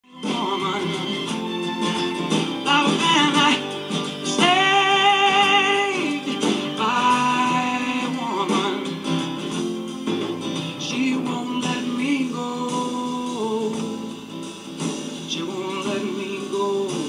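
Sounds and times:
man singing over acoustic guitar: 0.0s - 17.0s.

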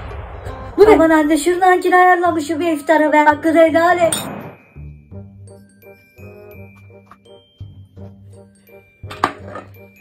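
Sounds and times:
background music with chiming notes: 2.1s - 10.0s.

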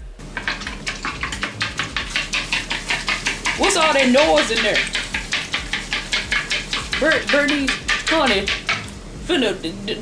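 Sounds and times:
fork clinking against bowl: 0.4s - 8.9s.

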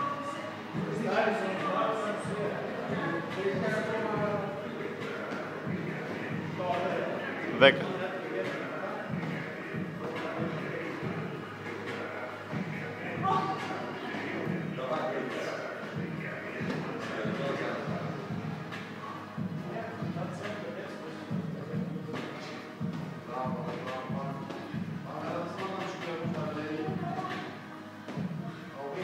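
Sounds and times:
background music: 0.0s - 29.0s
voices in echoing gym: 0.0s - 29.0s.

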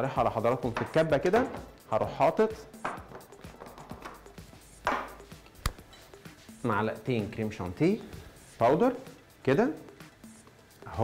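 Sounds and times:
faint background music: 0.0s - 11.0s
kitchenware knocking on counter: 0.7s - 1.7s, 2.8s - 3.9s.

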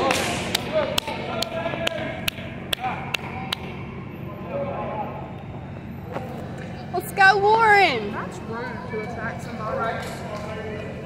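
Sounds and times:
rhythmic hand clapping: 0.0s - 3.8s.

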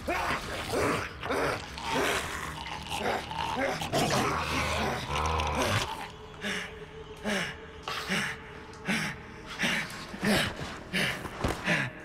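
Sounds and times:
creature growling and snarling: 0.0s - 6.1s.

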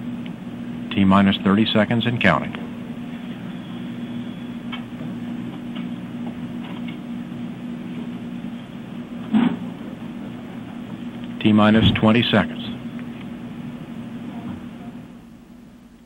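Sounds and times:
voice line hum and hiss: 0.0s - 16.0s.

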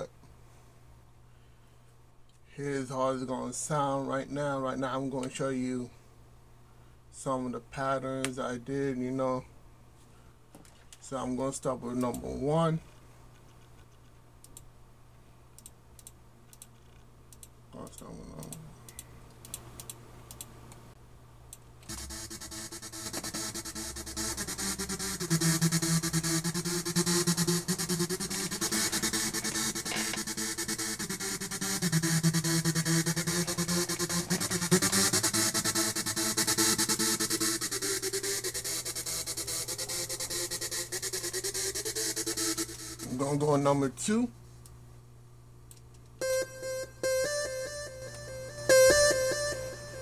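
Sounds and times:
quiet clicks: 15.6s - 20.8s, 45.7s - 46.2s
synth chords over bass: 21.9s - 43.4s, 46.2s - 50.0s.

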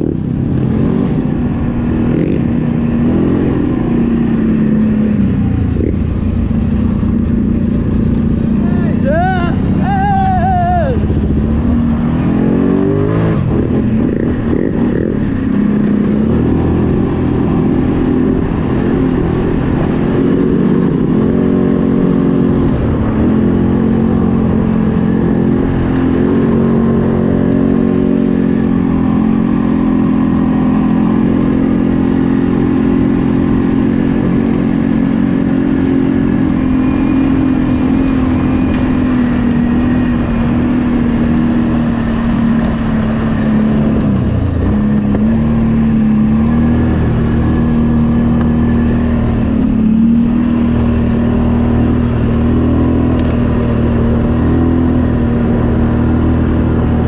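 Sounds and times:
atv engine running: 0.0s - 57.0s.

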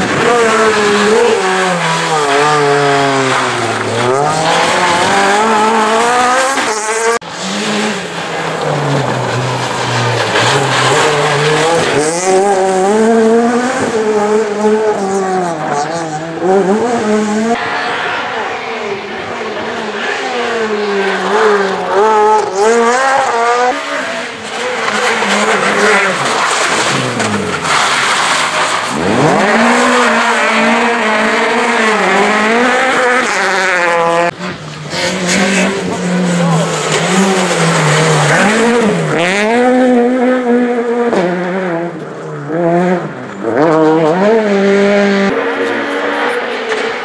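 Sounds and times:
tyres on gravel: 0.0s - 14.2s, 17.6s - 40.3s
rally car engines revving: 0.0s - 47.0s.

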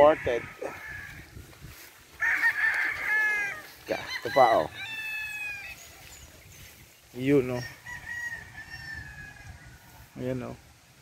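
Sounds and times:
rooster crowing: 0.0s - 1.3s, 2.1s - 5.9s, 7.6s - 10.0s.

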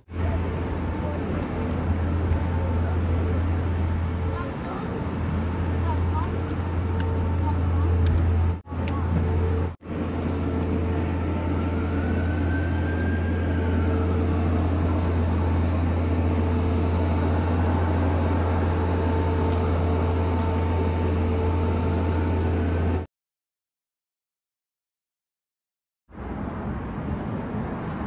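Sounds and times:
street noise: 0.0s - 23.1s, 26.1s - 28.0s
loud low mechanical hum: 0.1s - 23.1s.

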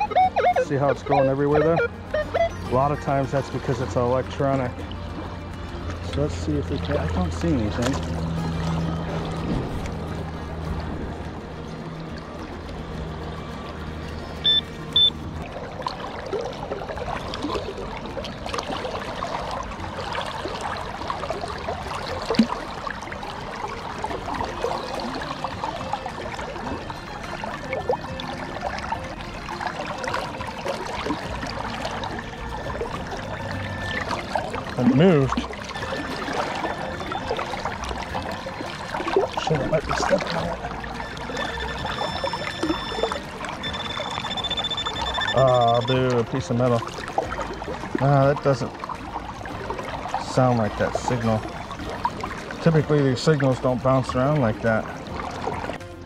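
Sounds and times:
short high electronic beeps: 0.0s - 3.2s, 14.4s - 15.2s, 33.5s - 34.3s, 35.7s - 37.6s, 40.5s - 46.0s
river water splashing: 0.0s - 56.0s.

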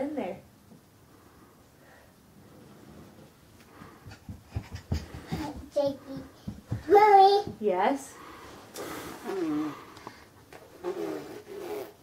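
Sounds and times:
toddler footsteps on carpet: 3.6s - 7.8s
toddler panting: 3.8s - 7.5s.

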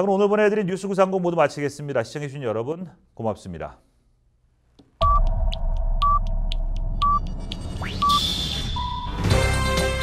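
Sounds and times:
steady low electronic drone: 5.0s - 9.2s
electronic theme music: 5.0s - 10.0s
short high beeps: 6.0s - 6.3s, 7.0s - 9.2s.

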